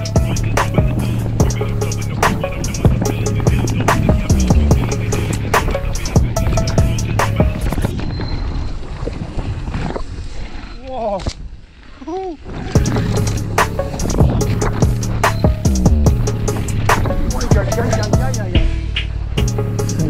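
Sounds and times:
phonk trap beat: 0.0s - 7.9s, 12.8s - 20.0s
sliding tones: 0.0s - 8.8s, 12.5s - 20.0s.

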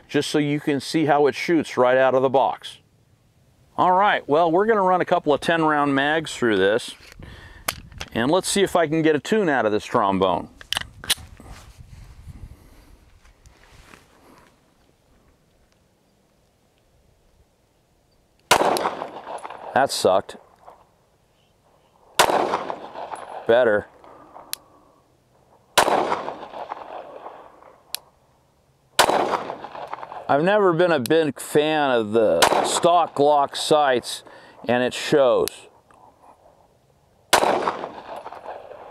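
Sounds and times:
wind rumble on microphone: 7.1s - 8.2s, 10.5s - 14.0s
pistol shots echoing: 18.5s - 20.1s, 22.2s - 24.5s, 25.8s - 27.7s, 29.0s - 30.3s, 32.3s - 33.2s, 37.3s - 38.9s.

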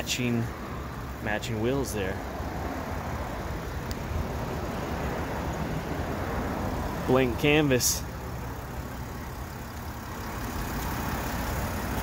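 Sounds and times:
low rumble of vehicle noise: 0.0s - 12.0s.

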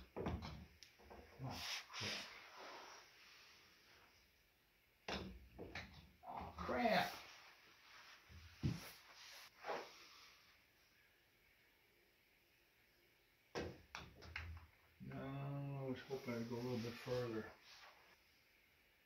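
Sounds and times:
man speaking: 6.3s - 7.3s, 15.0s - 17.6s.

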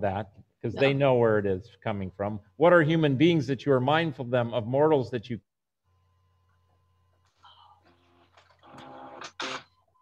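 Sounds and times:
garbled voice over video call: 0.0s - 1.3s.

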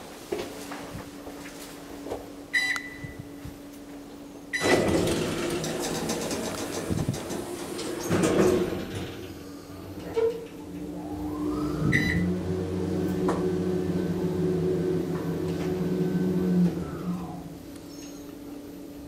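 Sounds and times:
keypad button beeps: 2.6s - 3.2s
elevator drive whine: 4.4s - 19.0s
elevator doors sliding shut: 4.6s - 18.3s.

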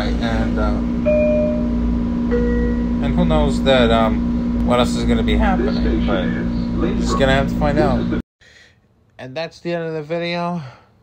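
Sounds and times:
train running hum and rumble: 0.0s - 8.2s
two-tone electronic chime: 1.0s - 3.1s.

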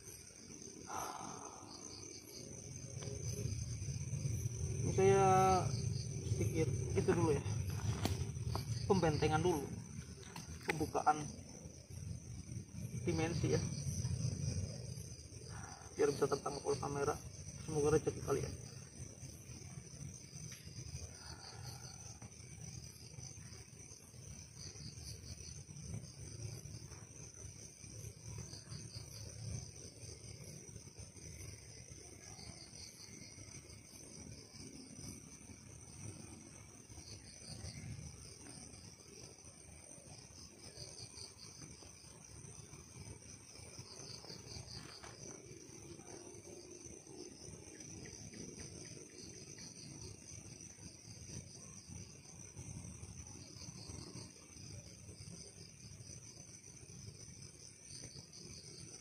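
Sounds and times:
night insects chirring: 0.0s - 59.0s.

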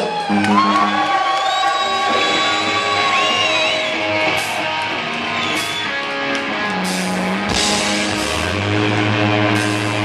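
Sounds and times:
electric guitar long bent note: 2.1s - 10.0s
pulsing bass notes: 6.5s - 10.0s.

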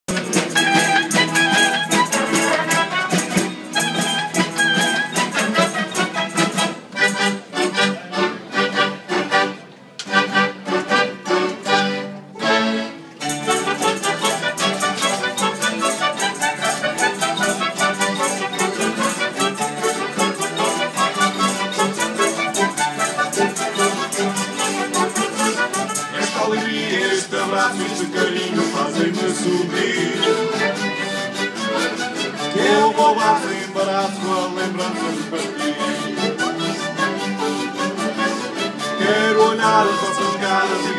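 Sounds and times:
acoustic guitars strumming: 0.1s - 40.9s.

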